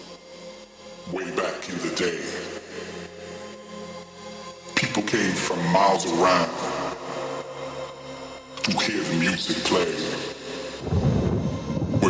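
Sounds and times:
heavy bass: 0:10.8 - 0:12.0
rumbling noise wash: 0:10.8 - 0:12.0.

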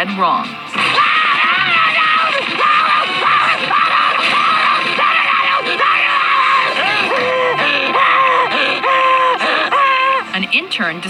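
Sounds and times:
cartoon voice wailing and sobbing: 0:00.8 - 0:10.3.

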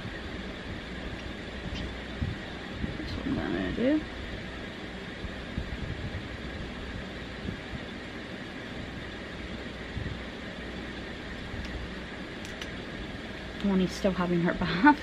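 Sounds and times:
background hum and hiss: 0:00.0 - 0:15.0.

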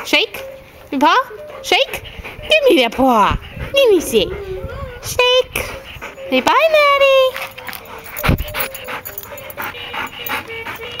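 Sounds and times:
dog breathing: 0:00.0 - 0:11.0
dog whining: 0:00.4 - 0:11.0.

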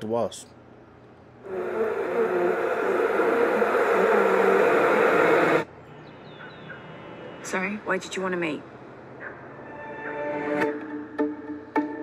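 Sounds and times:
faint hiss: 0:01.4 - 0:05.7
wavering hum wash: 0:01.4 - 0:05.7.

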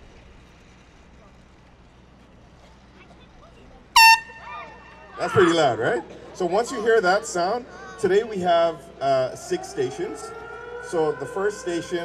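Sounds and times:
air horn blast: 0:04.0 - 0:05.0.

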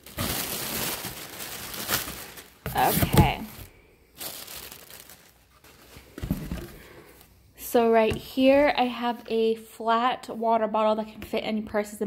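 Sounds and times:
plastic air pillows crinkling: 0:00.0 - 0:07.2.

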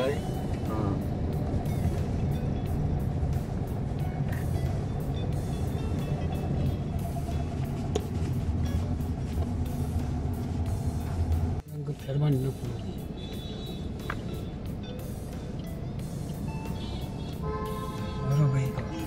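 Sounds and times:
car engine and road rumble: 0:00.0 - 0:19.0
music playing: 0:00.0 - 0:19.0.

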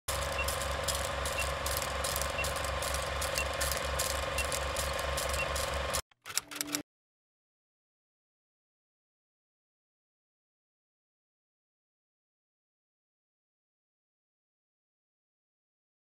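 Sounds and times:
movie projector clatter and hum: 0:00.0 - 0:06.8
short high beeps: 0:00.2 - 0:04.7.

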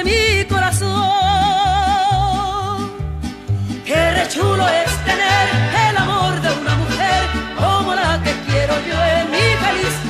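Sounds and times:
stepping bass line: 0:01.7 - 0:10.0.

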